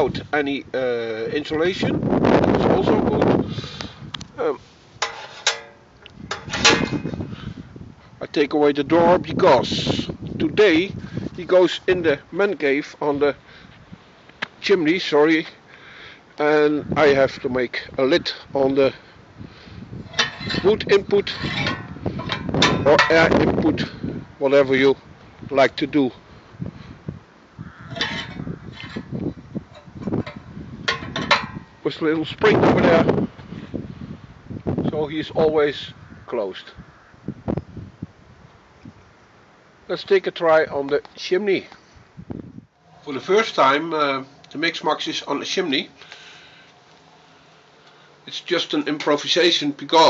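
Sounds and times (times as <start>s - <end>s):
metal door scraping: 5.0s - 7.2s, 20.0s - 23.4s, 27.9s - 29.1s
metal lid clinks and knocks: 5.0s - 7.2s, 20.1s - 23.3s, 27.9s - 29.0s, 29.7s - 31.7s
light metal rattling: 5.0s - 7.4s, 20.0s - 24.0s, 27.8s - 32.3s.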